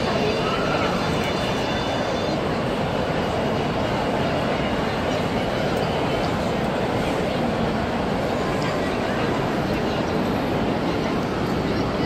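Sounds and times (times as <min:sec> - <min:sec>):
jet engine noise: 0:00.0 - 0:12.0.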